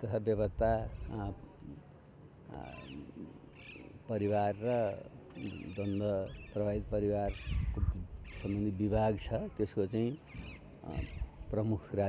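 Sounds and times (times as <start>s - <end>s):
high chirping animal calls: 2.5s - 8.8s, 10.2s - 11.5s.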